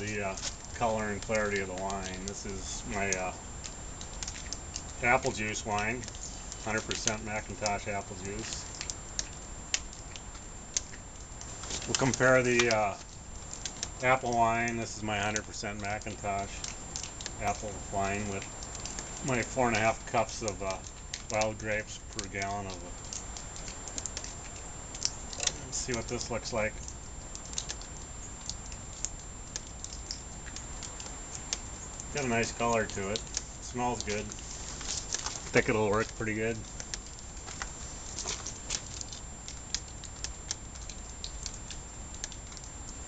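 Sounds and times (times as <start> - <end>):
light clicks and ticks: 0.0 - 43.0
low steady rumble: 0.0 - 43.0.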